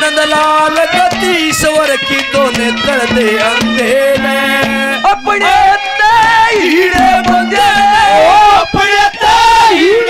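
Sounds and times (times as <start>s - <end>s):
man singing through a pa: 0.0s - 10.0s.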